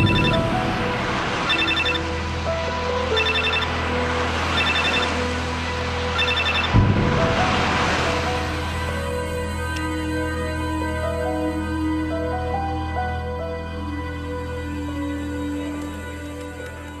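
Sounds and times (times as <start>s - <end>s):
phone ringtone beeps: 0.0s - 0.4s, 1.5s - 2.0s, 3.2s - 3.7s, 4.6s - 5.1s, 6.2s - 6.7s
soft background music: 0.0s - 17.0s
sudden rush of noise: 4.0s - 9.1s.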